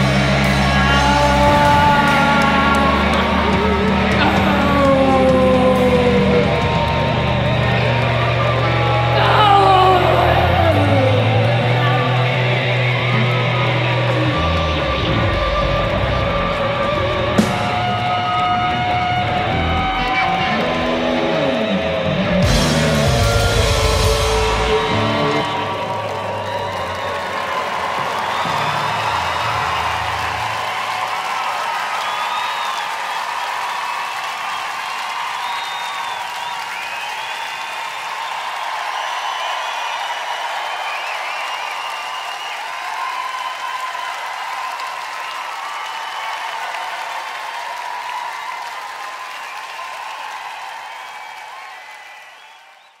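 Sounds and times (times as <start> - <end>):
audience applauding and cheering: 0.0 - 53.0.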